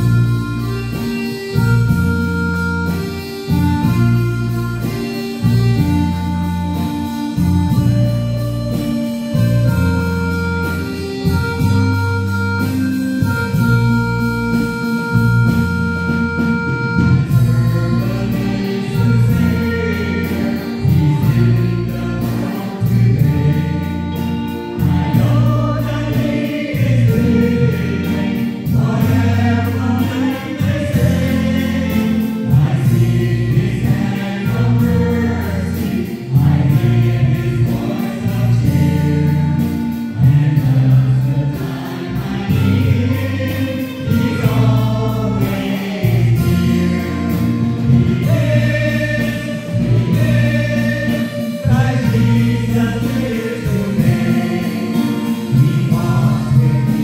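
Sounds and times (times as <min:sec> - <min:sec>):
group singing a hymn: 0:00.0 - 0:57.0
sustained low accompaniment: 0:00.0 - 0:57.0.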